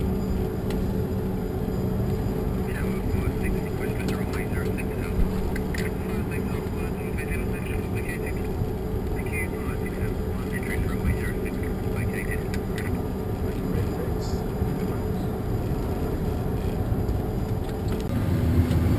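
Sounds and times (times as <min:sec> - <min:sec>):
jet cockpit drone with low hum: 0:00.0 - 0:18.9.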